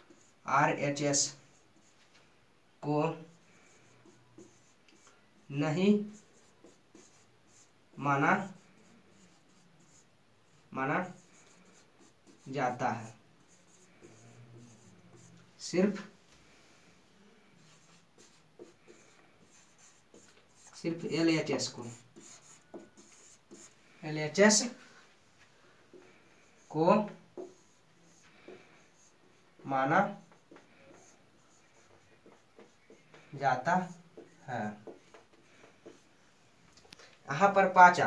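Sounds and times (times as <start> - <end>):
marker pen scratching on whiteboard: 0.0 - 0.5, 1.1 - 2.2, 3.2 - 16.1, 17.6 - 23.8, 25.9 - 36.3
marker pen tapping: 31.9 - 33.3, 34.1 - 36.0.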